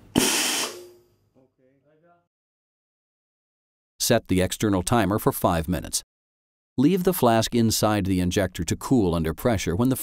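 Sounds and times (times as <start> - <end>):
compressed air hiss: 0.0 - 1.0.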